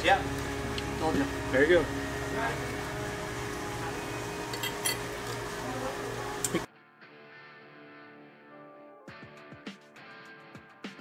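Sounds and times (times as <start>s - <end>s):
steady hum: 0.0s - 6.7s
forks clinking on plates: 4.4s - 5.4s.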